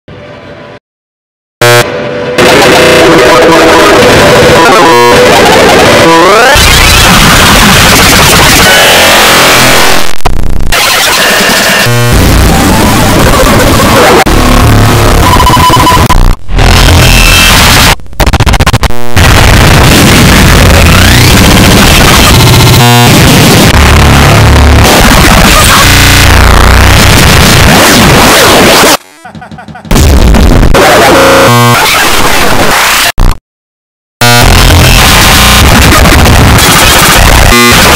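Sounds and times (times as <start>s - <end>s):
distorted noise and music: 1.6s - 29.1s, 29.9s - 33.4s, 34.2s - 37.9s
glitchy stuttering chord: 10.7s - 28.8s, 34.2s - 37.9s.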